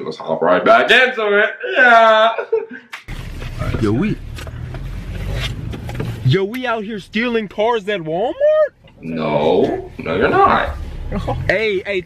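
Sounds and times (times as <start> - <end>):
car engine rumble inside cabin: 3.1 - 12.0.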